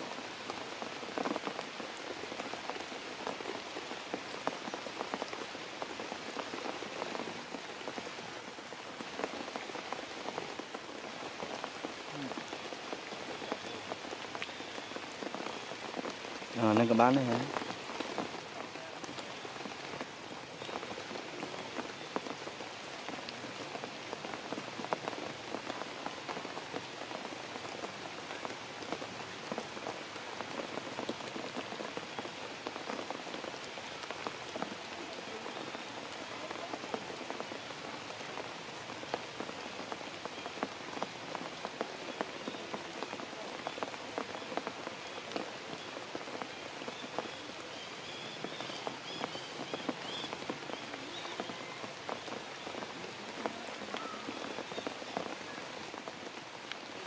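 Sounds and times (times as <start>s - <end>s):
rain falling on foliage: 0.0s - 57.0s.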